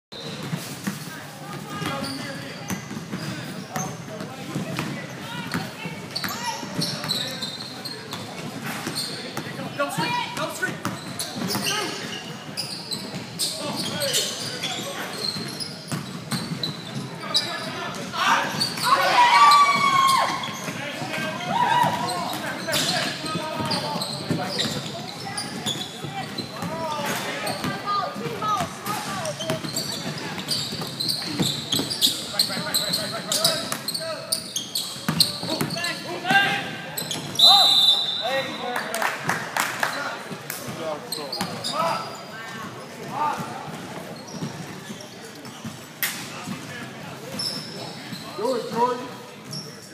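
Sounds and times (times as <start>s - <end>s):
people talking and calling out: 0.2s - 49.9s.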